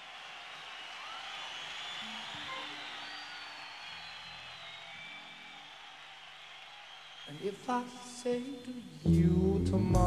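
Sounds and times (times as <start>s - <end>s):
concert hall audience noise: 0.0s - 9.0s
faint high whistle-like tone: 0.8s - 5.7s.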